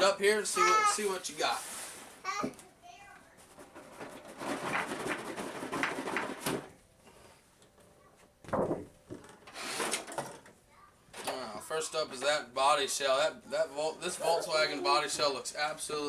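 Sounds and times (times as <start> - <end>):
cardboard and plastic rustling: 0.6 - 7.2, 8.4 - 10.5.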